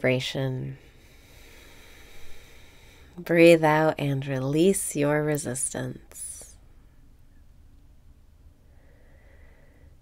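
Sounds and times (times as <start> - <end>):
inhale through the nose: 1.0 - 3.2, 8.7 - 10.0.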